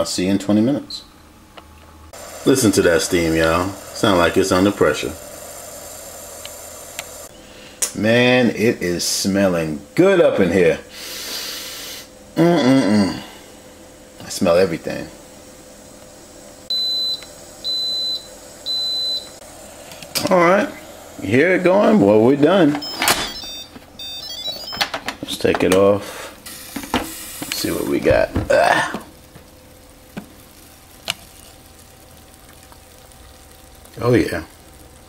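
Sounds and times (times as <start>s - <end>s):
pressure cooker sizzling hiss: 2.1s - 12.4s, 13.0s - 24.0s, 25.3s - 35.0s
pressure cooker beeping: 2.2s - 7.3s, 16.7s - 19.4s, 22.7s - 25.0s.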